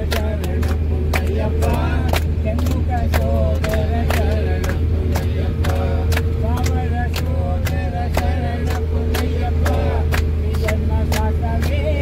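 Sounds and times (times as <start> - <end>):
engine and road drone: 0.0 - 12.0
voices chanting: 0.0 - 12.0.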